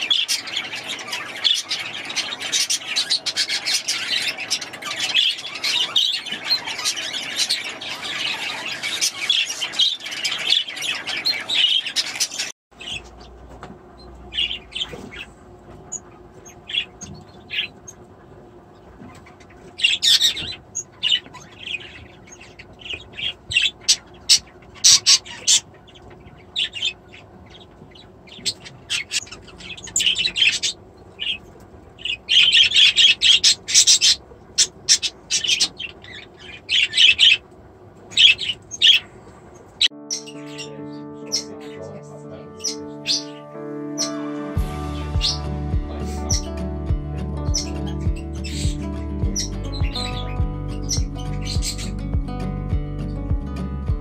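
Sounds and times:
small parrots chattering and squawking: 0.0s - 13.4s, 14.0s - 41.8s, 42.5s - 43.4s, 44.0s - 46.7s, 47.4s - 52.0s.

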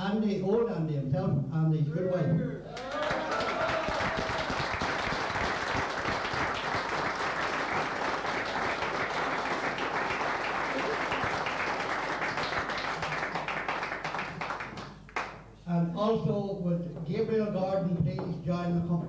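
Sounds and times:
audience applauding: 2.7s - 15.4s.

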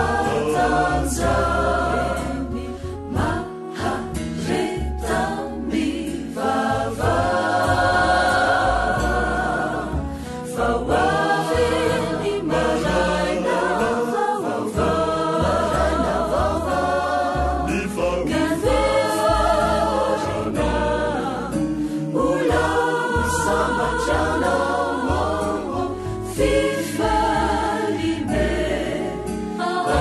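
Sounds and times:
choir singing: 0.0s - 30.0s
instrumental backing with bass line: 0.0s - 30.0s.

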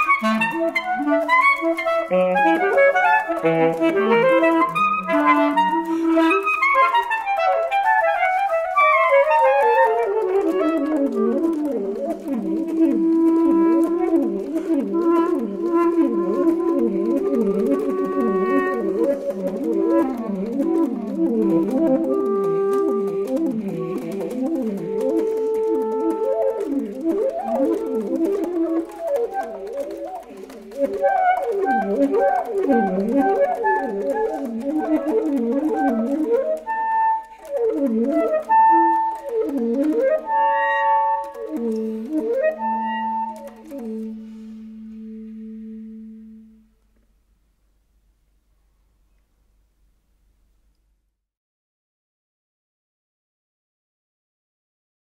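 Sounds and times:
saxophone: 0.0s - 47.1s
clarinet: 0.0s - 47.4s.

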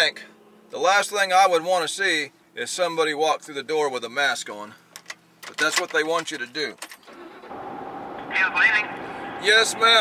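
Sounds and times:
truck cab road and engine noise: 0.0s - 10.0s.

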